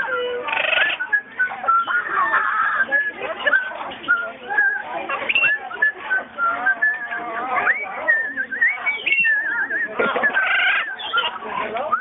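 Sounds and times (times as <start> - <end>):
parrots whistling: 0.0 - 11.4
parrot harsh squawk: 0.2 - 1.1, 10.3 - 11.3.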